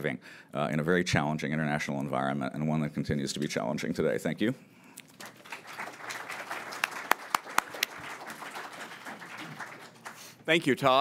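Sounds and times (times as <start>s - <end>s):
audience applauding: 5.1s - 11.0s.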